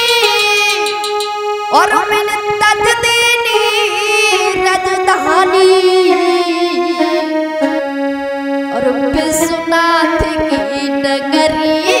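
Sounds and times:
electronic keyboard sustained notes: 0:00.0 - 0:12.0
drum strokes: 0:00.7 - 0:01.6.

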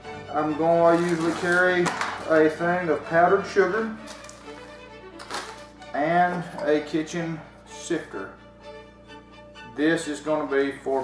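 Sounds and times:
faint background music: 0:00.0 - 0:11.0
plastic bag crinkling: 0:00.7 - 0:02.6, 0:04.0 - 0:05.8.

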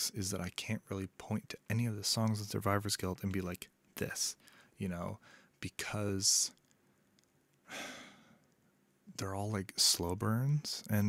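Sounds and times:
man sighing: 0:07.7 - 0:08.4.

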